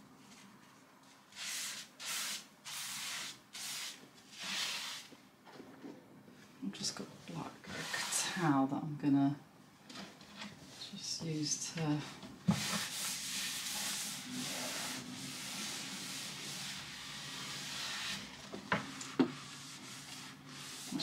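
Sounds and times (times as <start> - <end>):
towel rubbing on desk: 12.6 - 18.3, 19.3 - 21.0.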